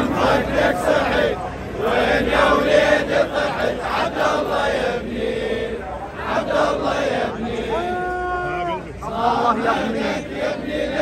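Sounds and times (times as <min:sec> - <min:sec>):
crowd of men chanting: 0:00.0 - 0:11.0.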